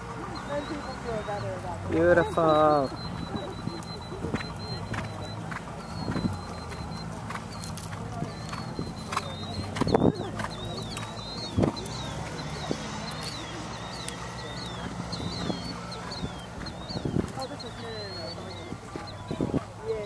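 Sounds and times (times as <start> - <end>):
bird chirping: 0.0 - 20.0
horse hoofbeats on sand: 0.0 - 20.0.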